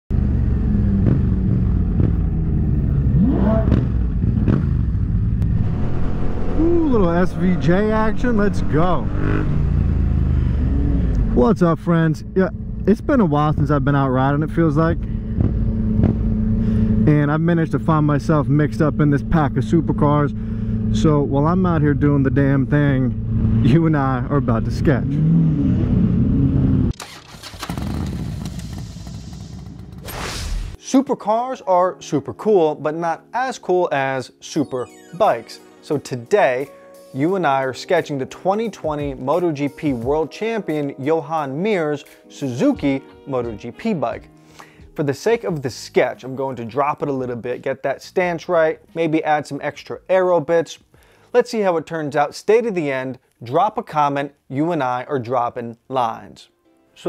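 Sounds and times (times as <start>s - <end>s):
vehicle engines in slow traffic: 0.1s - 30.0s
engine revving up: 0.1s - 30.8s.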